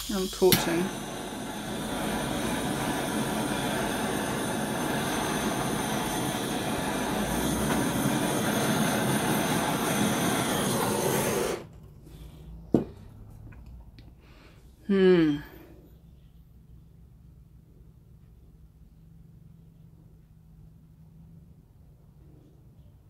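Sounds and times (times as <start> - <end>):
heat gun blowing: 0.0 - 11.7.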